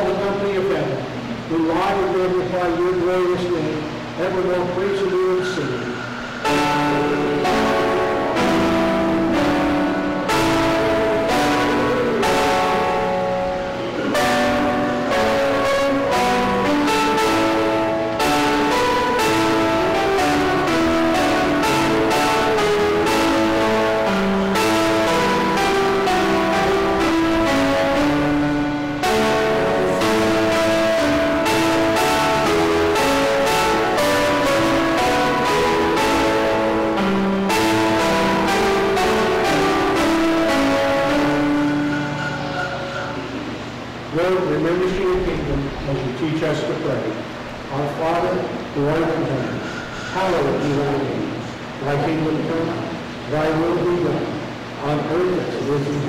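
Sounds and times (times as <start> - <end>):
organ playing sustained chords: 0.0 - 56.0.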